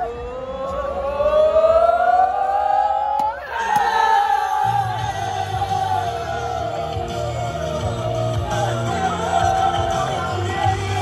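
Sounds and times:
men chanting rising ooh: 0:00.0 - 0:11.0.

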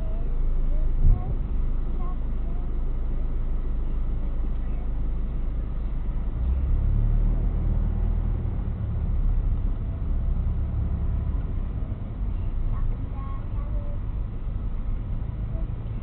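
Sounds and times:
car engine: 0:00.0 - 0:16.0
road noise inside car: 0:00.0 - 0:16.0.

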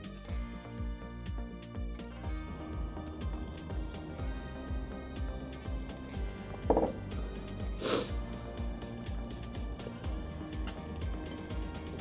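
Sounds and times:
background music with low beat: 0:00.0 - 0:12.0
glass set down on table: 0:06.6 - 0:07.0.

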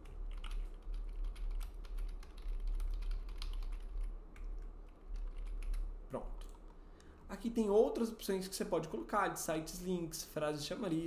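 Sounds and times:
typing on keyboard: 0:00.0 - 0:06.6
low steady hum: 0:00.0 - 0:11.0.

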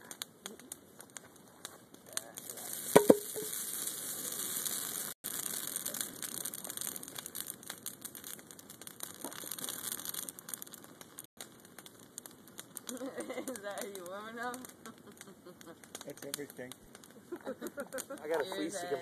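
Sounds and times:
bonfire crackling: 0:00.0 - 0:19.0.

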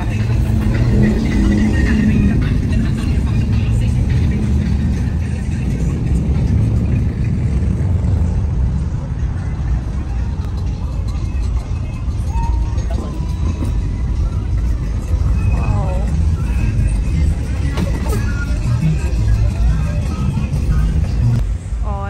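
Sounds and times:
car engines rumbling: 0:00.0 - 0:22.0
music playing: 0:00.0 - 0:22.0.

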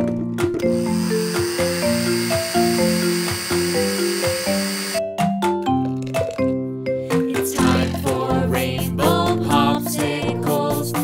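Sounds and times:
cheerful instrumental music: 0:00.0 - 0:11.0
electric blender whirring: 0:00.6 - 0:05.0.

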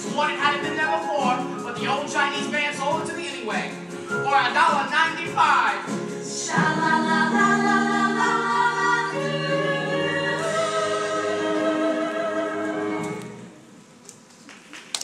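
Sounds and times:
group singing held notes: 0:06.2 - 0:13.5.

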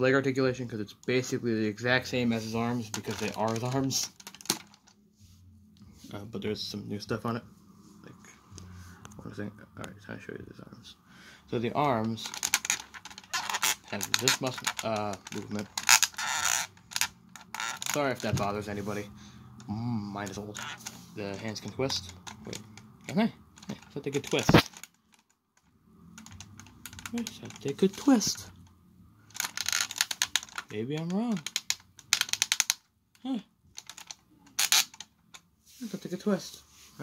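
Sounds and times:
plastic toy joint creaking: 0:02.1 - 0:04.9, 0:11.7 - 0:18.8, 0:19.5 - 0:35.5
plastic clicks: 0:02.9 - 0:04.9, 0:11.8 - 0:18.4, 0:19.6 - 0:35.5.

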